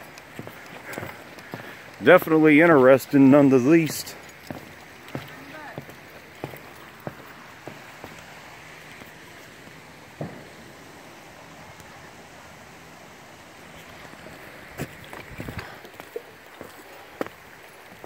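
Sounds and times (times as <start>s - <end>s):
footsteps on footbridge deck: 0.0s - 10.5s, 13.8s - 18.0s
creek running over rocks: 0.0s - 18.0s.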